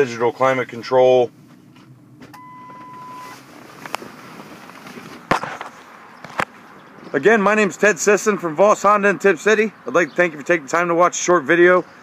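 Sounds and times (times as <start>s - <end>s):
steady electronic beep: 2.4s - 3.4s.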